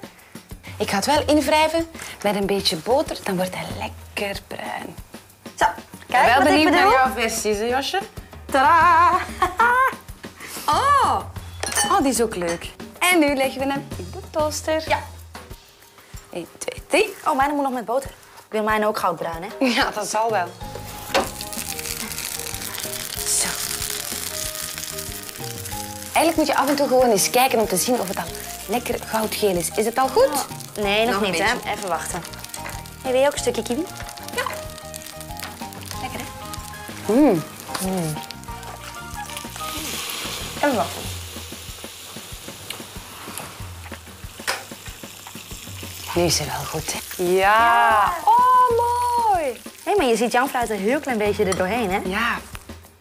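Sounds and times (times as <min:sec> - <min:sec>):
background music: 0:00.0 - 0:53.0
sandwich sizzling in a toaster: 0:20.6 - 0:51.2.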